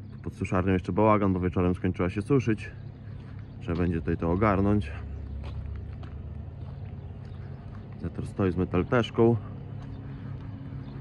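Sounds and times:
diesel engines idling: 0.0 - 11.0
footsteps on paving stones: 0.0 - 11.0.

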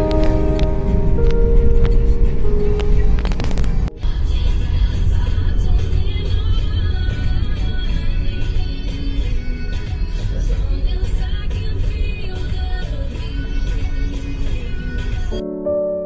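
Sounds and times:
car rumbling on road: 0.0 - 15.2
music with long held notes: 0.0 - 16.0.

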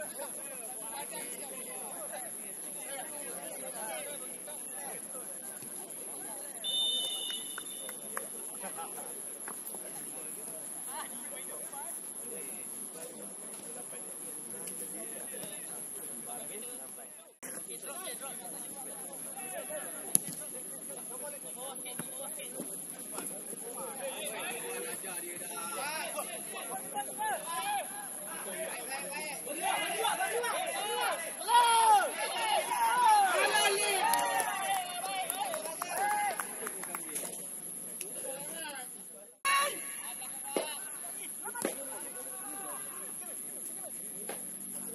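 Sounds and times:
referee's whistle: 6.6 - 8.0
players calling out: 22.7 - 36.6.

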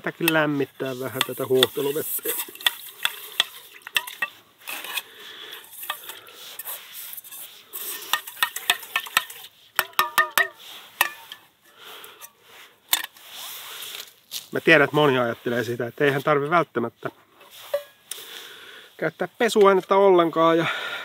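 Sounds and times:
brush scrubbing metal pot: 0.0 - 11.5, 12.1 - 14.0, 14.6 - 18.0.

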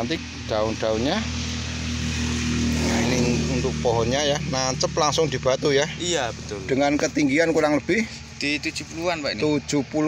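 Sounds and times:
low engine drone: 0.0 - 10.0.

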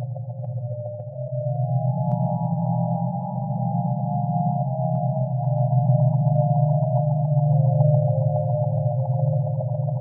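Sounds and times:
slow ambient synth music: 0.0 - 10.0.

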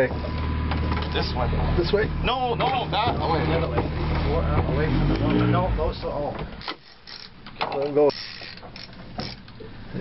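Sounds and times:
fishing reel ratcheting: 6.6 - 9.7.

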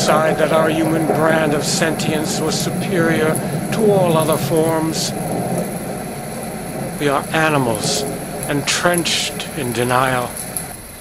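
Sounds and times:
low mechanical rumble: 0.0 - 11.0.

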